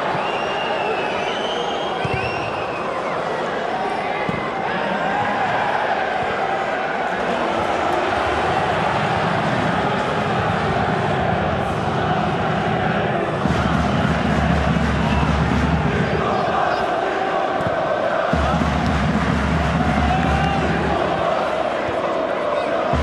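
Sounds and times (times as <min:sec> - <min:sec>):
crowd chanting and singing: 0:00.0 - 0:23.0.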